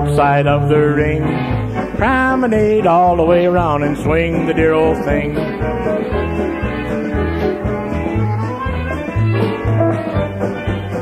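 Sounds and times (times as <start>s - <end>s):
square-dance music: 0.0s - 11.0s
steady bass line: 0.0s - 11.0s.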